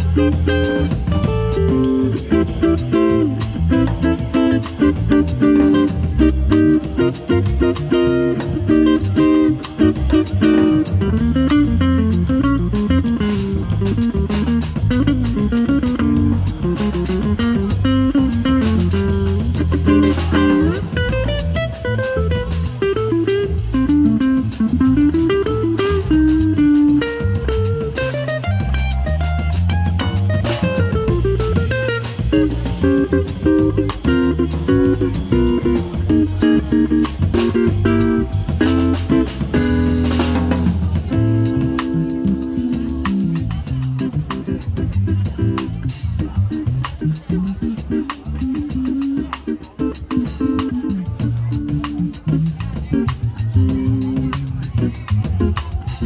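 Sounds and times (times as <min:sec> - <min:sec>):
drum cymbals: 0:00.0 - 0:56.0
electric guitar melody: 0:00.0 - 0:56.0
walking bass line: 0:00.0 - 0:56.0.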